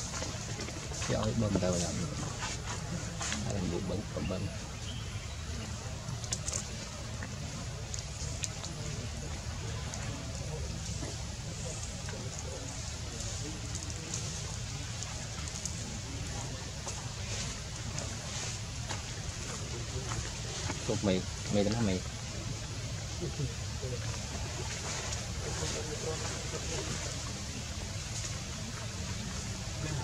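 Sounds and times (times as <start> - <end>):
faint indistinct voices: 0.0 - 30.0.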